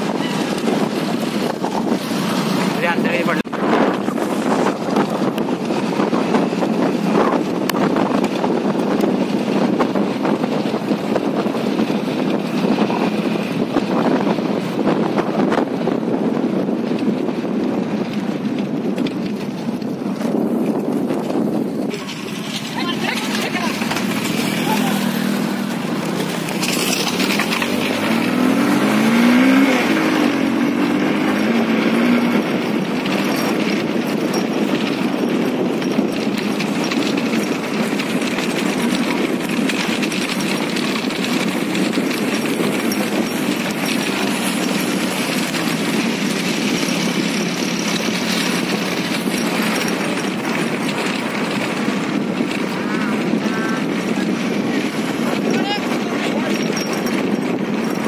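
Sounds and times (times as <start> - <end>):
motorcycle engine revving: 0.0 - 58.0
wind noise on microphone: 0.0 - 58.0.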